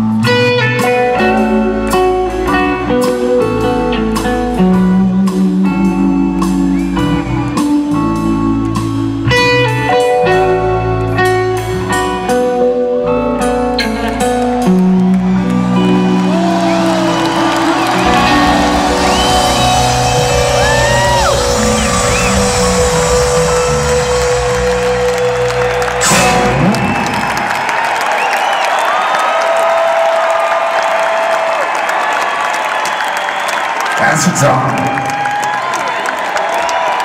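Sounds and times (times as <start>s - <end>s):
live rock band playing: 0.0s - 28.5s
crowd cheering and whistling: 6.4s - 8.1s, 14.5s - 37.0s
cymbal crash: 18.4s - 26.7s.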